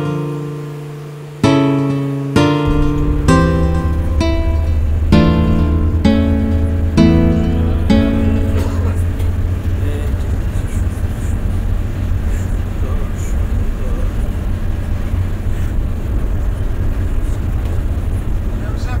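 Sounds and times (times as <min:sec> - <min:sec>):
loud low rumble: 0:02.6 - 0:19.0.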